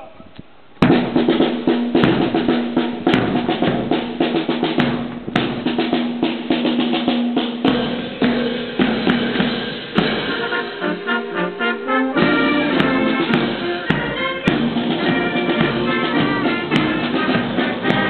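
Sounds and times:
snare and bass drum march beat: 0:00.8 - 0:18.0.

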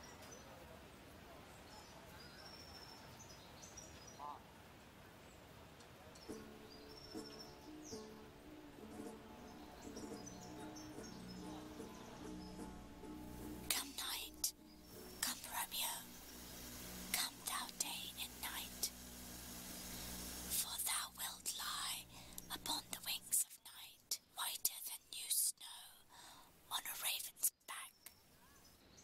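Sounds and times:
woman whispering: 0:13.7 - 0:14.6, 0:15.2 - 0:16.2, 0:17.1 - 0:18.9, 0:20.5 - 0:28.1.

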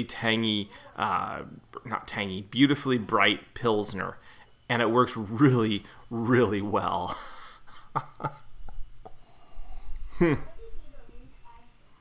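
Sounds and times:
man laughing breathily: 0:07.1 - 0:08.9.

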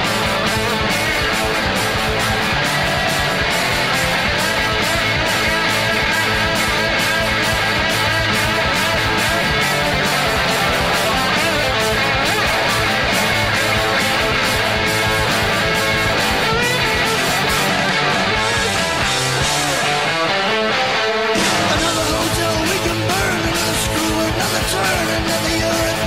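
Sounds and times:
heavy metal instrumental: 0:00.0 - 0:26.0.

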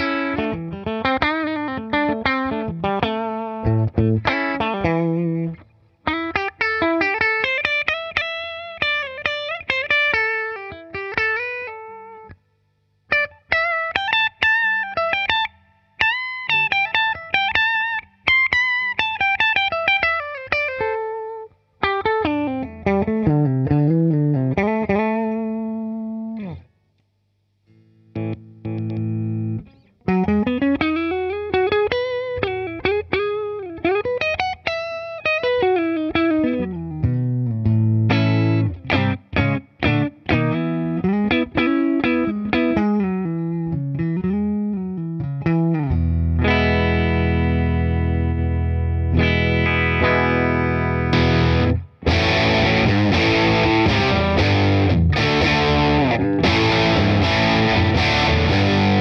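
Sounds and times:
electric guitar playing: 0:00.0 - 0:12.4, 0:13.0 - 0:26.7, 0:27.7 - 0:59.0.

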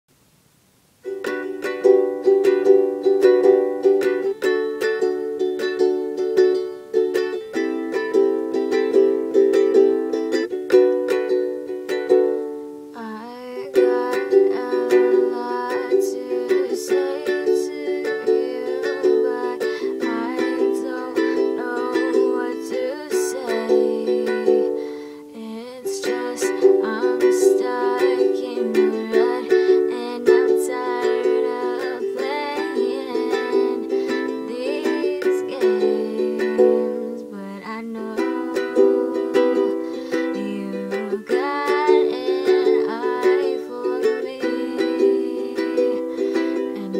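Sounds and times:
ukulele strumming: 0:00.9 - 0:46.9.

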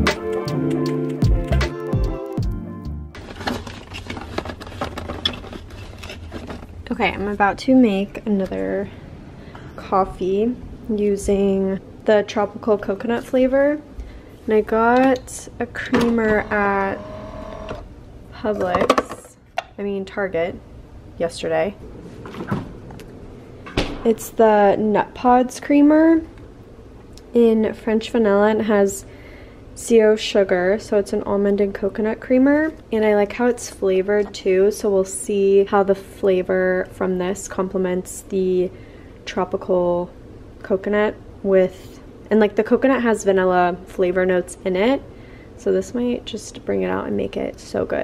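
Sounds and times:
background music: 0:00.0 - 0:03.2
hand rummaging through cardboard boxes: 0:03.2 - 0:06.8.

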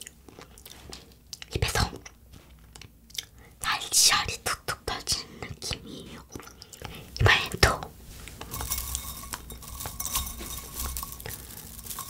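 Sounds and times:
soft whispered talk: 0:01.5 - 0:02.1, 0:03.6 - 0:06.4, 0:07.2 - 0:08.0
candy strands rustling: 0:07.9 - 0:12.0
crunchy candy chewing: 0:08.4 - 0:12.0.

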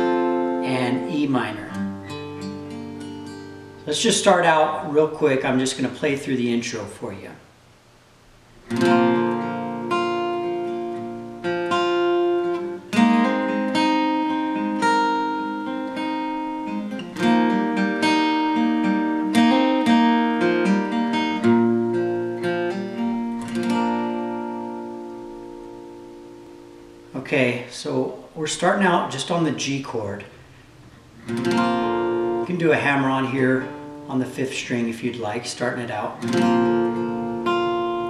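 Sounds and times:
acoustic guitar picking chords: 0:00.0 - 0:38.0.

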